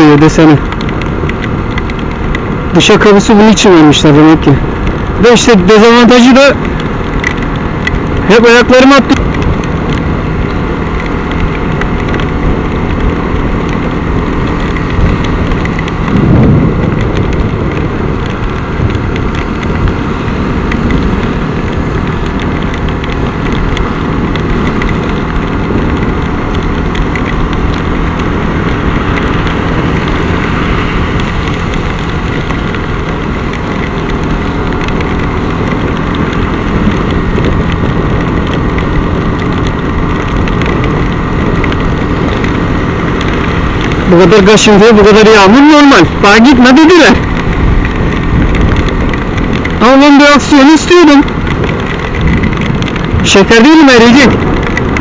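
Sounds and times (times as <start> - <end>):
motorcycle engine: 0.0 - 55.0
wind rush: 0.0 - 55.0.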